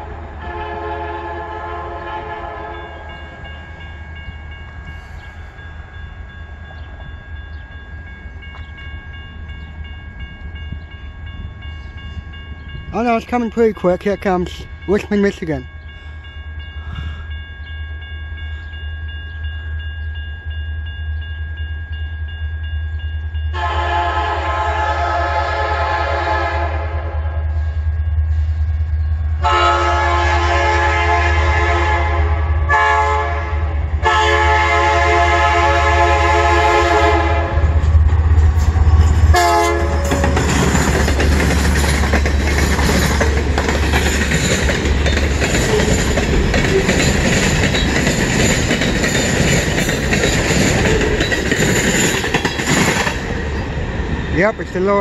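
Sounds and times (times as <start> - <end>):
train horn blasts: 0.0 - 3.4, 23.5 - 27.8, 29.4 - 37.9, 39.3 - 40.6
diesel locomotive rumbling: 0.0 - 55.0
crossing bell ringing: 1.6 - 24.8, 26.8 - 53.6
train wheels clattering on rails: 37.6 - 53.7.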